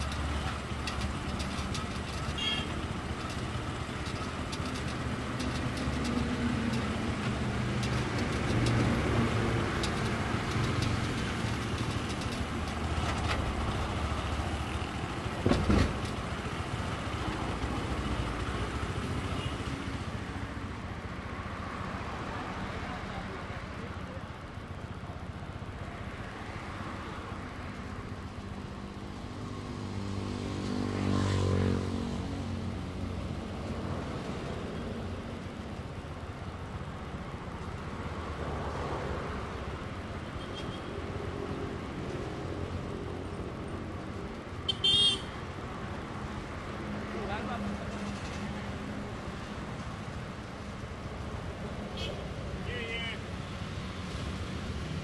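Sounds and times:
street traffic engines: 0.0 - 55.0
car horn toot: 2.4 - 2.7, 44.7 - 45.3.

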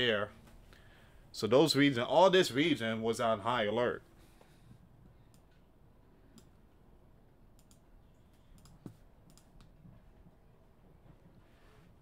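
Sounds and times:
computer mouse clicking: 7.6 - 9.8.

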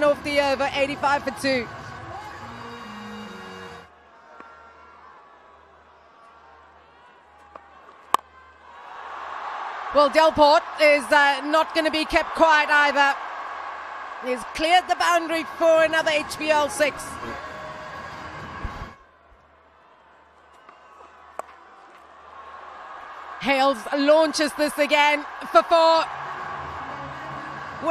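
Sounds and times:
stadium crowd cheering: 0.3 - 27.9.

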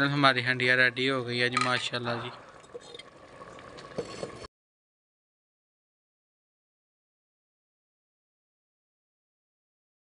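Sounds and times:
curry bubbling softly: 1.3 - 4.5.

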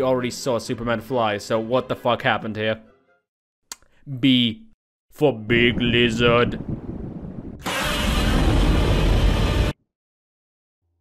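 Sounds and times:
dense noise burst with deep rumble: 5.6 - 9.8.

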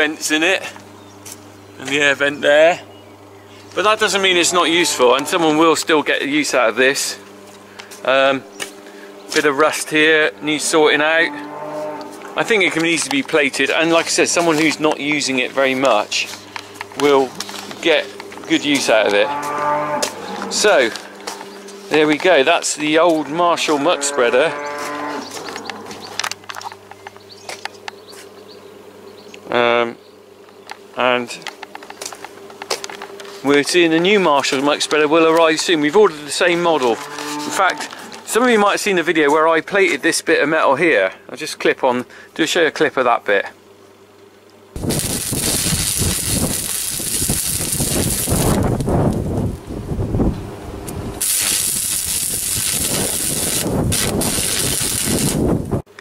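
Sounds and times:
low buzzing hum: 0.0 - 56.0
arc welder crackling: 3.7 - 10.9, 11.9 - 23.7, 30.6 - 35.6, 44.7 - 49.7, 50.7 - 56.0.

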